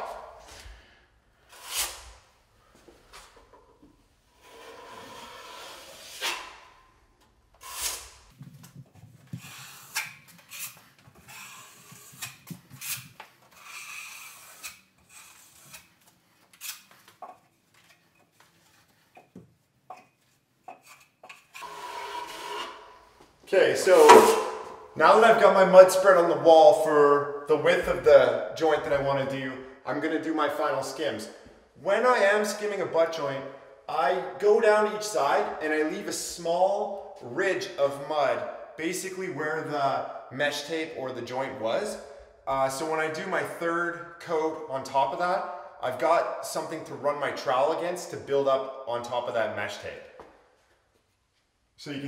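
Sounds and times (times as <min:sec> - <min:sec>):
trowel scraping compound: 0:04.4 - 0:06.6, 0:07.6 - 0:08.4, 0:09.3 - 0:16.9, 0:23.9 - 0:24.7.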